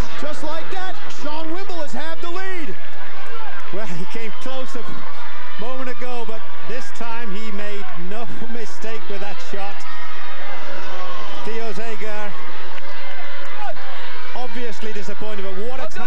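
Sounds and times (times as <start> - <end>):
commentator talking: 0.0 - 2.8, 3.7 - 10.0, 11.4 - 12.4, 13.6 - 16.0
noisy background: 0.0 - 16.0.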